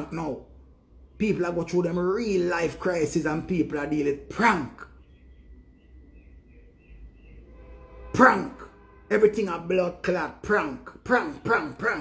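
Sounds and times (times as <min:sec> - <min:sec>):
low hum: 0:02.8 - 0:10.1.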